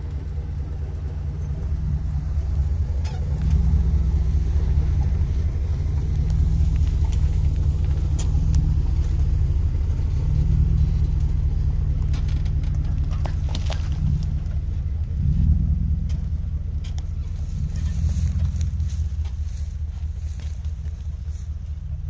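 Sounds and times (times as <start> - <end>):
truck engine rumbling: 0.0 - 22.0.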